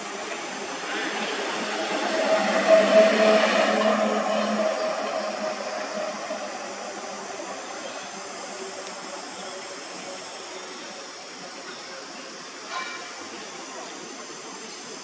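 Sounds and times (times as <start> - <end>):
vehicle engine passing by: 0.8 - 8.2.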